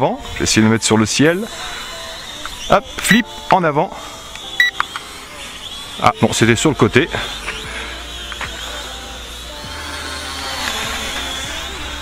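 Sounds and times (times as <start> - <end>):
background music: 0.0 - 12.0
drone propellers whining: 0.0 - 12.0.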